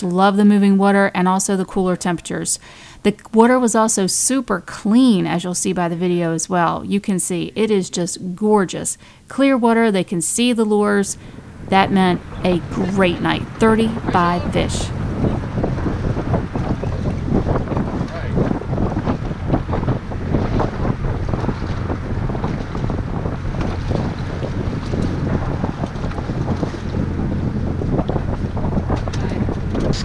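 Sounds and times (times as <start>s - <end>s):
wind buffeting microphone: 10.8s - 30.0s
water lapping against hull: 11.2s - 30.0s.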